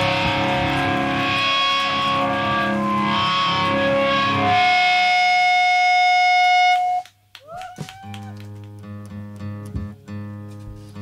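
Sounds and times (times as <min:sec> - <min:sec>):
short gliding squeals: 0:00.0 - 0:07.0.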